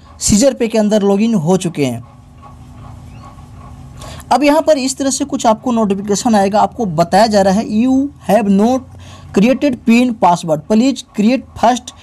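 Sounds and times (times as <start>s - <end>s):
room noise: 0.0s - 12.0s.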